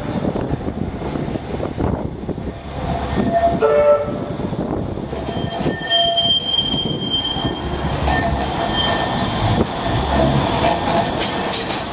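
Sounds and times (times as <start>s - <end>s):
tram running on rails: 0.0s - 11.9s
tram wheels squealing: 2.8s - 4.0s, 5.0s - 11.9s.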